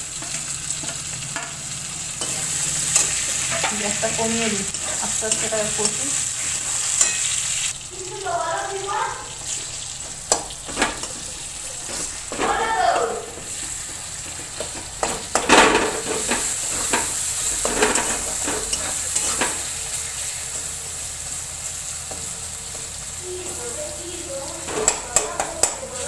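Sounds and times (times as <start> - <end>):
vegetables sizzling in hot oil: 0.0 - 26.0
metal spatula scraping pan: 0.1 - 7.7, 13.3 - 20.8.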